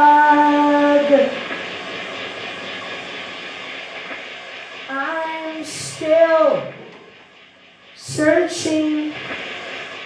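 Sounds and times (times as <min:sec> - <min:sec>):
rushing wash of noise: 0:00.0 - 0:10.0.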